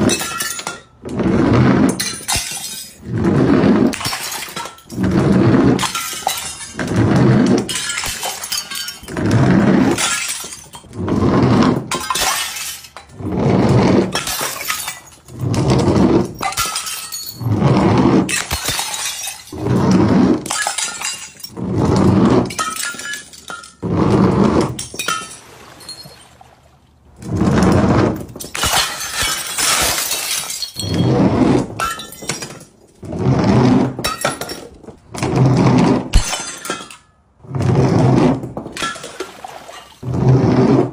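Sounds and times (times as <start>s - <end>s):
glass jars shattering: 0.0s - 1.0s, 1.9s - 3.1s, 3.9s - 5.0s, 5.7s - 9.2s, 9.8s - 11.0s, 11.8s - 13.2s, 14.0s - 17.6s, 18.2s - 23.8s, 24.6s - 26.6s, 28.1s - 33.0s, 33.8s - 35.0s, 36.1s - 37.2s, 38.4s - 40.0s.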